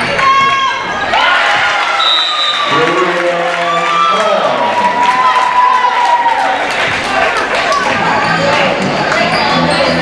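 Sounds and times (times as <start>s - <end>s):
voices in a large gym: 0.0s - 10.0s.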